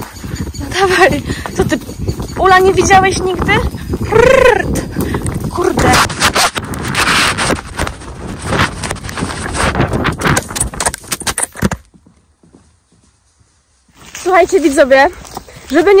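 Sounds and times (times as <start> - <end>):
horse hoofbeats galloping: 0.0 - 6.3, 7.3 - 14.0.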